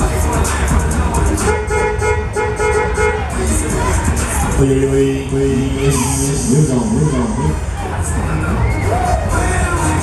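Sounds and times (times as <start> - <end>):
horn toots: 1.3 - 3.6.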